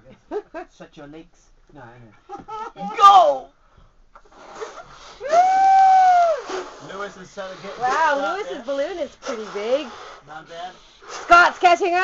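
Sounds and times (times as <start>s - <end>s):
balloons blown up by mouth: 4.2s - 7.0s.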